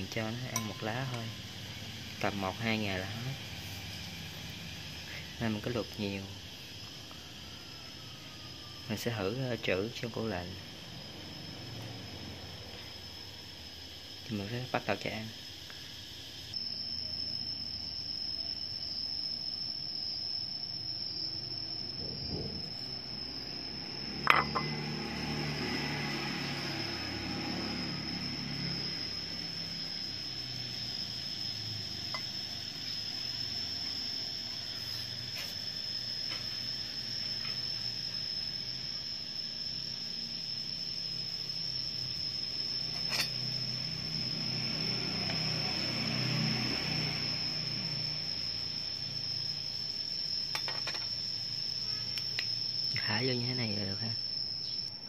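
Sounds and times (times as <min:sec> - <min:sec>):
crickets trilling: 0:00.0 - 0:55.0.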